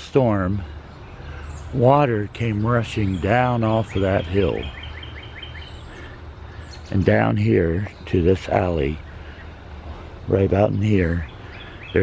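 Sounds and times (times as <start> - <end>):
small bird chirping: 0.6 - 12.0.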